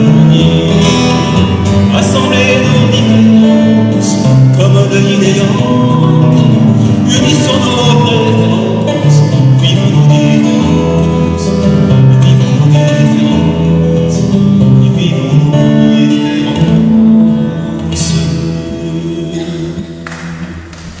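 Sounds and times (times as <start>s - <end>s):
acoustic guitar melody: 0.0s - 21.0s.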